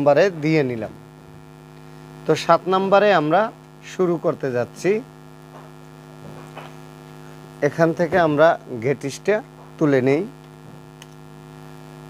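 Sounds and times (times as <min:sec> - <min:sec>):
man speaking: 0:00.0 - 0:01.0, 0:02.2 - 0:05.1, 0:07.6 - 0:10.4
electrical mains hum: 0:00.0 - 0:12.0.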